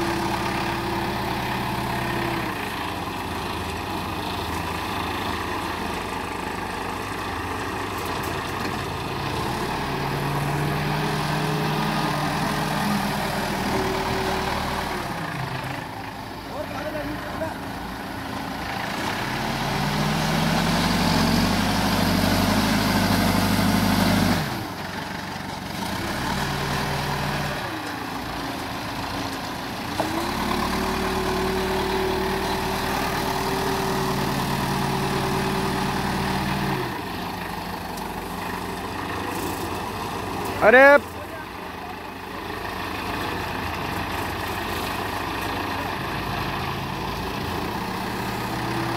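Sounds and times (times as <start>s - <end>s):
diesel engine revving under load: 0.0s - 48.9s.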